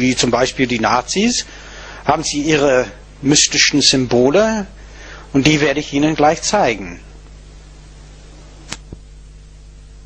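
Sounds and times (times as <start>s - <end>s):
faint hiss: 0.0s - 10.0s
low electrical hum: 0.0s - 10.0s.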